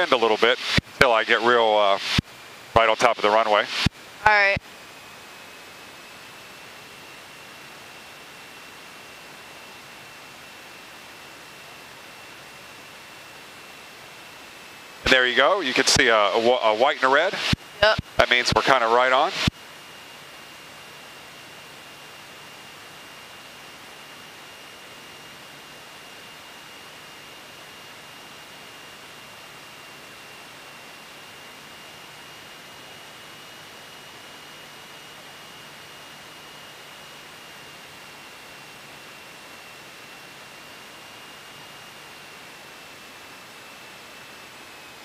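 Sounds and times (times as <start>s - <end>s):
steady hiss: 0.0s - 2.2s, 2.8s - 3.9s, 15.0s - 19.5s
faint high-pitched whine: 0.0s - 45.0s.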